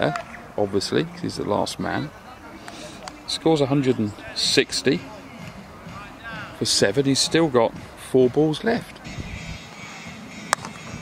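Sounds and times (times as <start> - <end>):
cricket bat hitting ball: 10.5 - 10.8.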